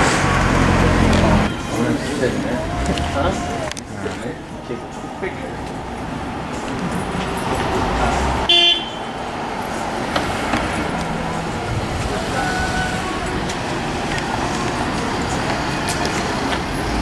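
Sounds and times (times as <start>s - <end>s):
street traffic: 0.0s - 17.0s
car horn toot: 1.4s - 2.1s, 8.5s - 9.1s.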